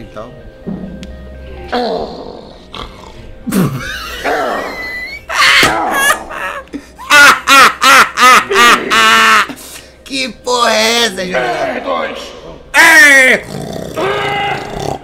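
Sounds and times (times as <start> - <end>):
man grunting and crying out: 1.7 - 6.5, 12.7 - 15.0
short hoarse yells: 14.0 - 14.9.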